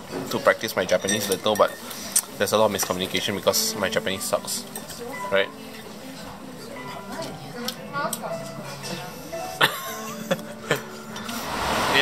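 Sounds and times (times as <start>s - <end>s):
tableware clinking: 0.0s - 7.8s, 11.0s - 11.4s
background noise: 0.0s - 12.0s.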